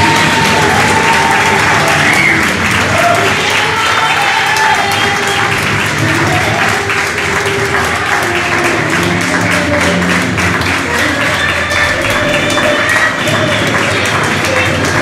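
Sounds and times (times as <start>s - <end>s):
crowd clapping: 0.0s - 15.0s
music: 0.0s - 15.0s
voices: 0.0s - 15.0s.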